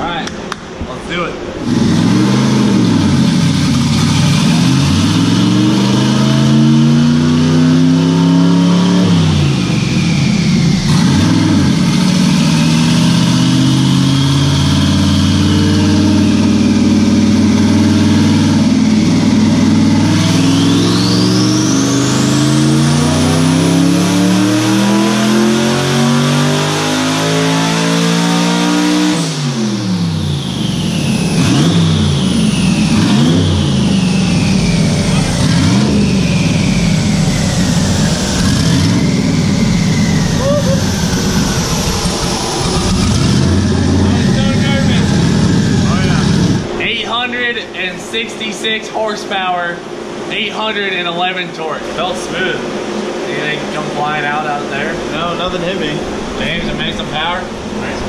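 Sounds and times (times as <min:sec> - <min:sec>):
engine revving at full throttle: 0:01.6 - 0:47.5, 0:52.0 - 0:58.0.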